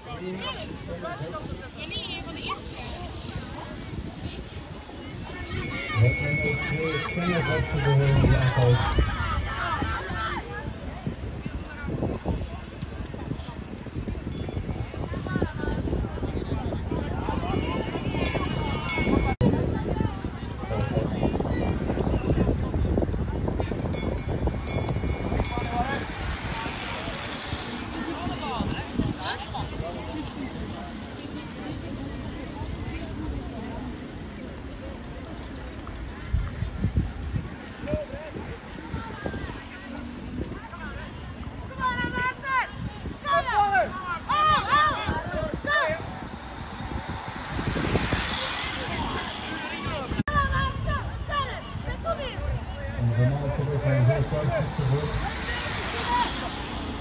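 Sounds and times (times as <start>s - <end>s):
bikes whirring past: 0.0s - 20.6s, 21.5s - 57.0s
crowd voices: 0.0s - 57.0s
wind rumble on microphone: 0.0s - 57.0s.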